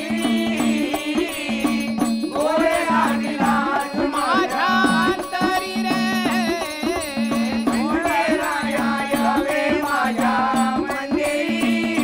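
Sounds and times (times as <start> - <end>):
hand drums: 0.0 - 12.0
jingling percussion: 0.0 - 12.0.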